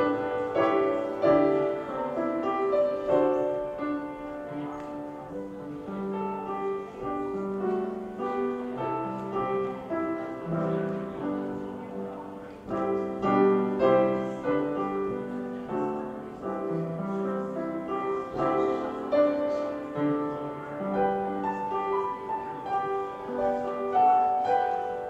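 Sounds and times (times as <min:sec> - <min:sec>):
slow gentle piano piece: 0:00.0 - 0:25.0.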